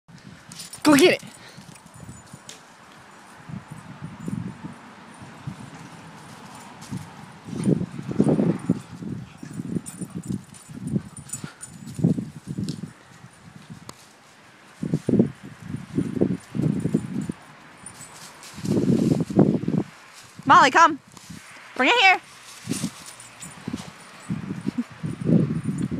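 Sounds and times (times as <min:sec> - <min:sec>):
leaves rustling: 0:11.7 - 0:25.6.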